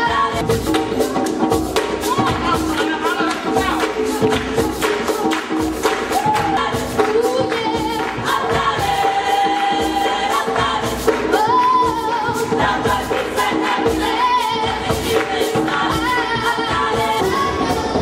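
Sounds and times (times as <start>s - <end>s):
gospel choir singing: 0.0s - 18.0s
percussion beat: 0.0s - 18.0s.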